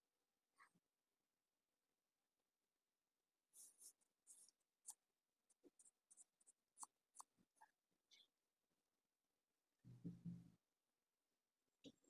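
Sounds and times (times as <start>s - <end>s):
hand stroking rabbit fur: 3.6s - 7.3s
light scratches and clicks: 3.6s - 8.3s.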